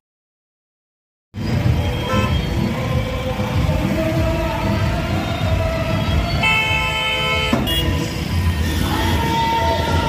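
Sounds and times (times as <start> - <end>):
music: 1.4 - 10.0
street noise: 1.4 - 10.0
vehicle horn honking: 1.9 - 2.5, 6.4 - 8.2.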